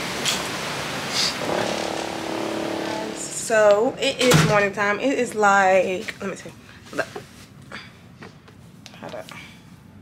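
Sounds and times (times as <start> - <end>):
steady droning tone: 1.4 - 4.3.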